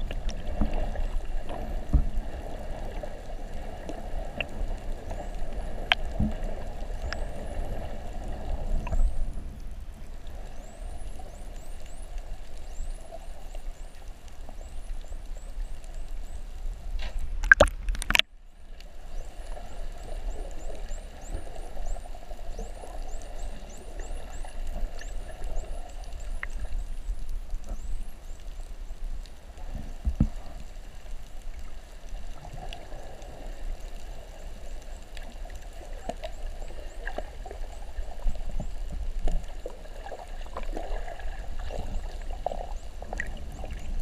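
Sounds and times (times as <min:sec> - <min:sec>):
underwater noise: 0:00.0 - 0:44.0.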